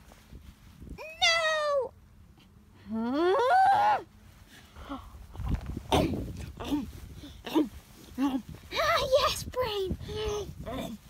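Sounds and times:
high-pitched wordless wail: 3.0 - 4.1.

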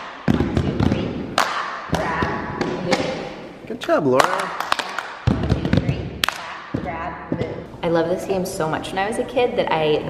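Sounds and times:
hand claps: 1.4 - 2.0, 4.2 - 6.8.

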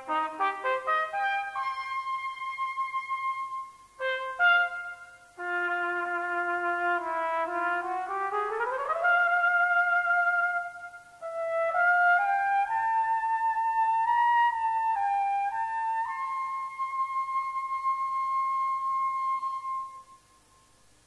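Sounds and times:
solo cornet playing: 0.0 - 20.6.

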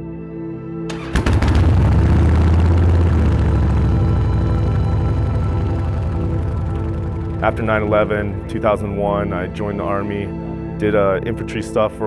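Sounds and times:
motorcycle engine idling: 1.0 - 9.0.

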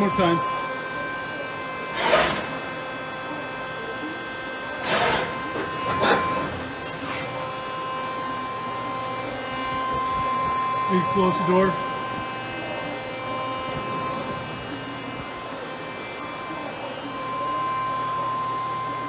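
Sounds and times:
machine hum: 0.0 - 19.0
pallet changer mechanical noise: 0.0 - 19.0.

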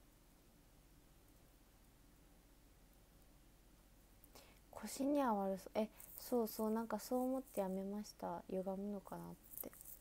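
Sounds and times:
woman speaking: 4.7 - 10.0.

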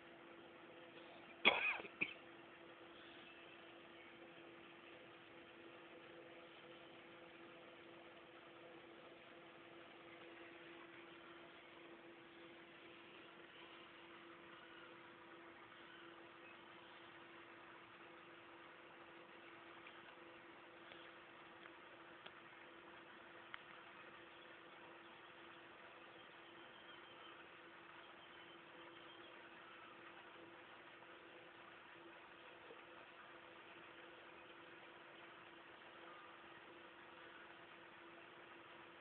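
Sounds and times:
faint hiss: 0.0 - 39.0
faint steady hum: 0.0 - 39.0
cough-like vocal sound: 1.4 - 2.2.

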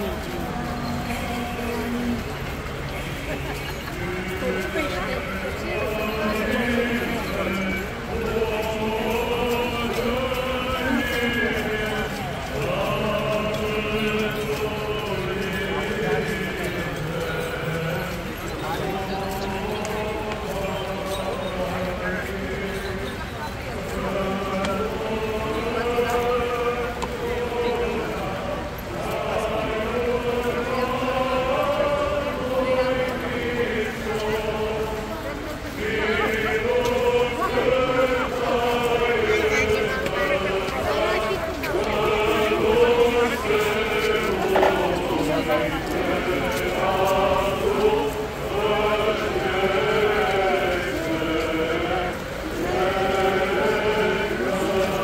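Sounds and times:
crowd voices: 0.0 - 55.0
hymn singing with held notes: 0.0 - 55.0
marching footsteps on pavement: 0.0 - 55.0.

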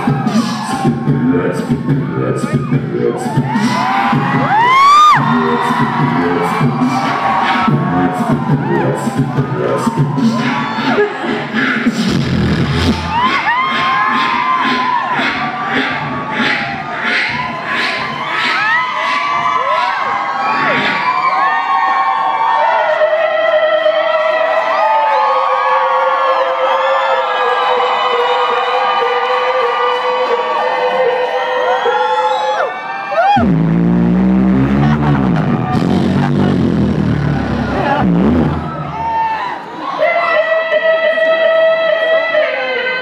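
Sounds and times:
audience cheering: 0.0 - 11.2, 12.8 - 40.4
beatboxing into microphone: 0.0 - 21.3, 22.8 - 39.3.

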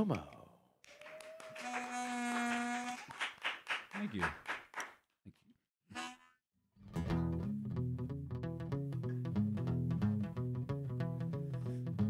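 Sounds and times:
hand claps: 0.8 - 5.0
harmonica held note: 5.9 - 6.4.

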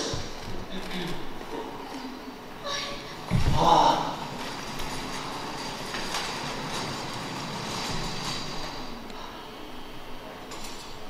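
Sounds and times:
trolley wheels rumbling: 3.6 - 9.1.

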